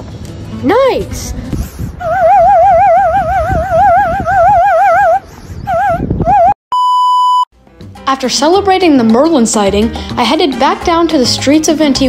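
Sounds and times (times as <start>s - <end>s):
handheld whistle warbling: 2.0s - 7.5s
electronic beep: 6.7s - 7.5s.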